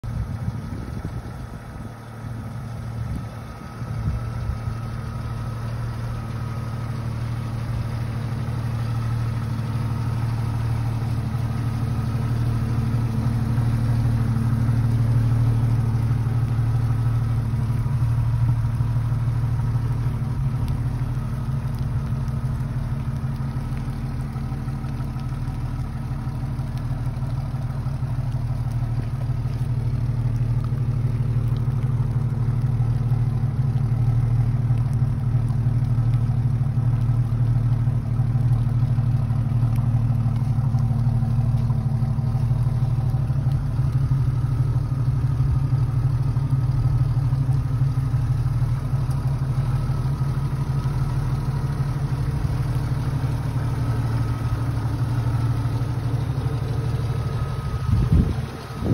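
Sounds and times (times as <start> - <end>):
car engine idling: 0.0 - 58.9.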